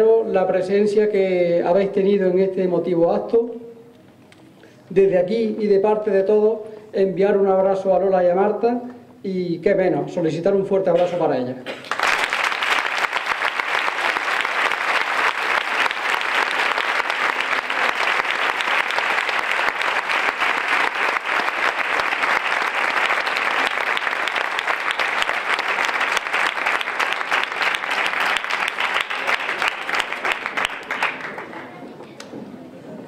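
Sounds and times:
large audience applauding: 11.7s - 31.8s.

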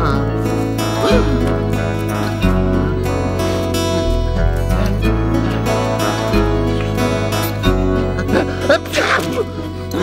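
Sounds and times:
cartoon soundtrack music: 0.0s - 10.0s.

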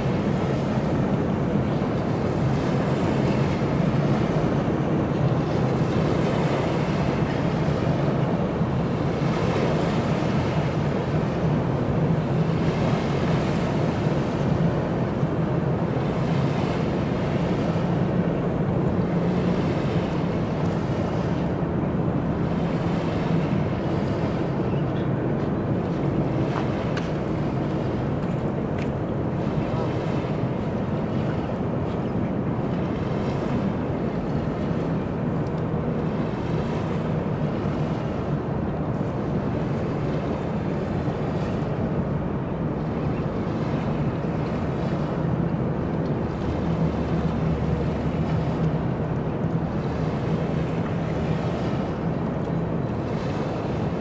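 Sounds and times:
constant low rumble: 0.0s - 54.0s.

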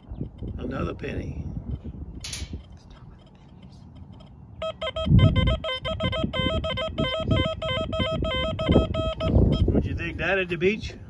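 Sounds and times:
metal detector warbling beep: 4.2s - 9.8s.

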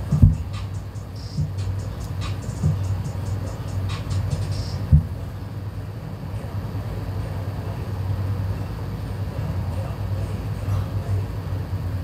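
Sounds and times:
heavy tire thump on grass: 0.0s - 0.7s, 4.8s - 5.2s
steady low hum: 0.0s - 12.0s.

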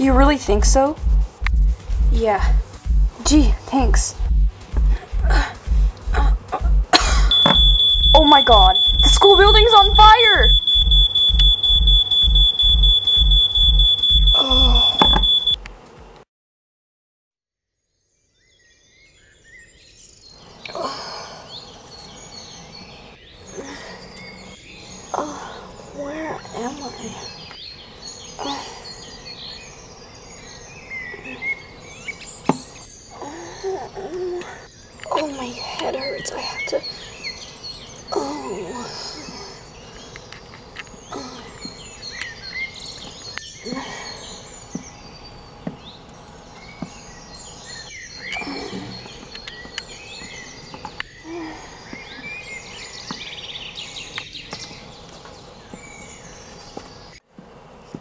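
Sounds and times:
birds chirping: 0.0s - 15.6s, 18.0s - 58.0s
faint insect hum: 18.0s - 58.0s
steady background hiss: 18.9s - 58.0s.

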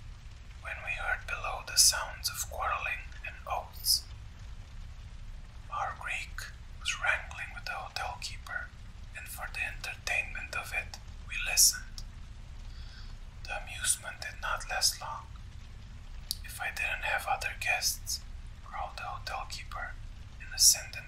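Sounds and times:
low background hum: 0.0s - 21.0s
person whispering: 0.6s - 4.1s, 5.7s - 12.0s, 13.4s - 15.3s, 16.3s - 21.0s.

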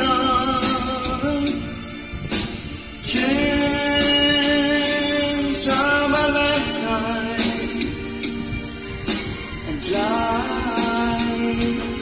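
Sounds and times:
man singing into a microphone: 0.0s - 1.9s, 3.0s - 8.0s, 9.6s - 12.0s
backing music: 0.0s - 12.0s.

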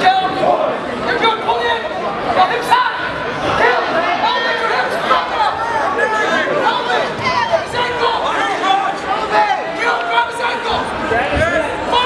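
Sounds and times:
crowd shouting and chattering: 0.0s - 12.0s.

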